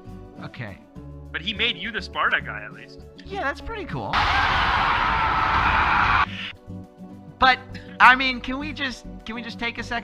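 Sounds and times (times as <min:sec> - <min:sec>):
harsh sustained scream: 0:04.2 - 0:06.5
dramatic music: 0:04.2 - 0:06.6.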